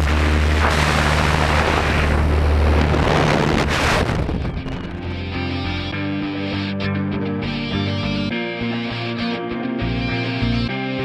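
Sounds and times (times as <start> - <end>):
wind rushing on microphone: 0.0 - 5.1
propeller plane engine drone: 0.0 - 10.9.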